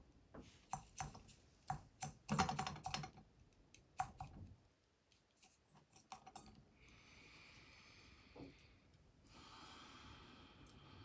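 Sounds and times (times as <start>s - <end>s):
sharp clicks and taps: 0.7s - 4.5s.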